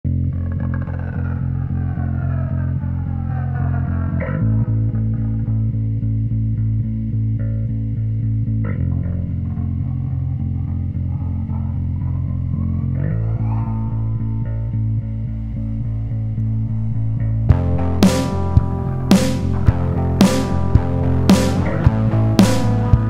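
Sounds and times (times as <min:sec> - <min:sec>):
bass and electric guitar playing: 0:00.0 - 0:23.0.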